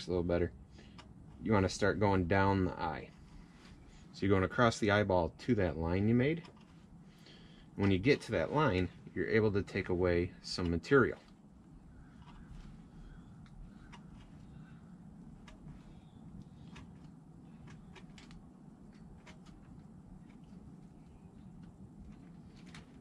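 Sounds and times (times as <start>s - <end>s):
low steady background noise: 0.0s - 23.0s.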